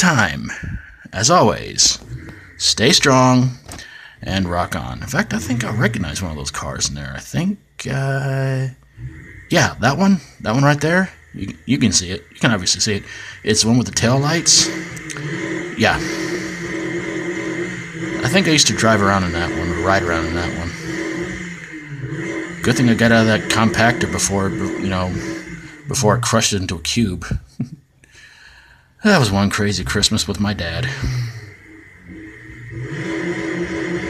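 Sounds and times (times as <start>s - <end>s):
car engine running: 1.1s - 7.3s, 7.9s - 27.7s, 29.1s - 34.0s.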